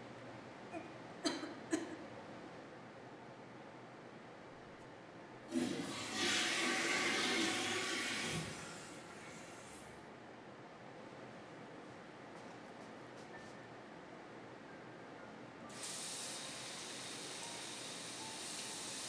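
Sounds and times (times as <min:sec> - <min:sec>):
toilet flushing: 0:05.5 - 0:09.9, 0:15.7 - 0:19.0.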